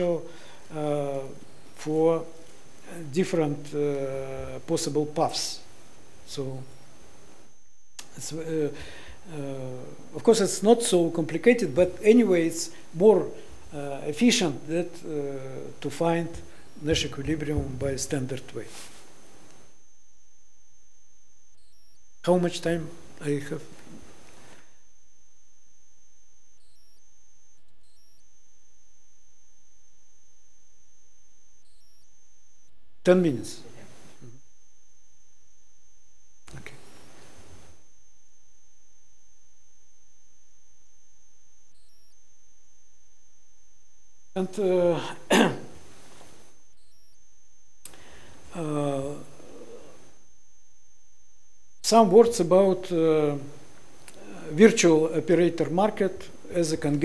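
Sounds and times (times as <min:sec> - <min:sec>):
man speaking: 0:00.0 - 0:05.7, 0:06.3 - 0:06.7, 0:08.0 - 0:18.9, 0:22.2 - 0:23.8, 0:33.0 - 0:34.4, 0:36.5 - 0:36.9, 0:44.4 - 0:45.7, 0:48.5 - 0:49.9, 0:51.8 - 0:53.6, 0:54.2 - 0:57.0
faint high-pitched whine: 0:00.0 - 0:57.0
low electrical hum: 0:00.0 - 0:57.0.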